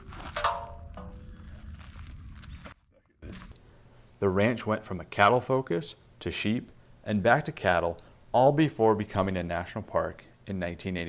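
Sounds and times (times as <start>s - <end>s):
low rumble: 0.0s - 3.5s.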